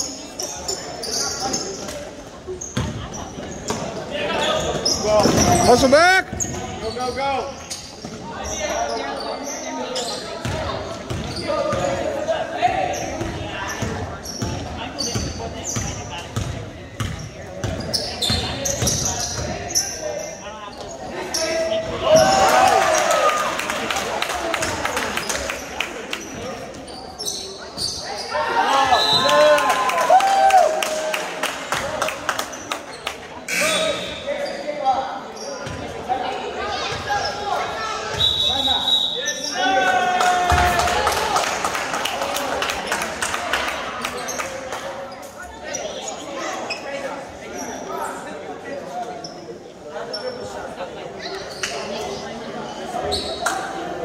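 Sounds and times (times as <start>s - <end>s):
referee's whistle: 28.8s - 29.3s, 38.1s - 39.6s.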